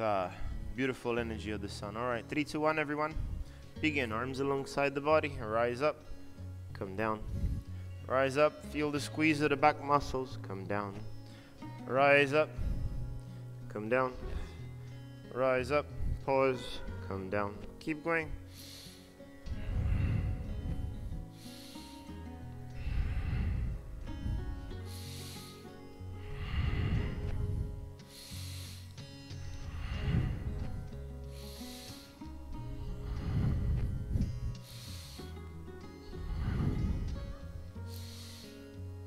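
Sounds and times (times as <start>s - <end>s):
soft background music: 0.0s - 39.0s
man breathing hard: 0.3s - 0.8s, 3.2s - 3.8s, 7.3s - 8.0s, 11.1s - 11.8s, 12.5s - 13.6s, 14.2s - 15.2s, 15.9s - 17.0s, 18.3s - 39.0s.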